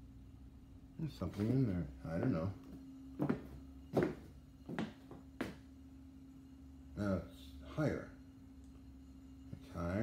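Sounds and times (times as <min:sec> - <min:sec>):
faint steady hum: 0:00.0 - 0:10.0.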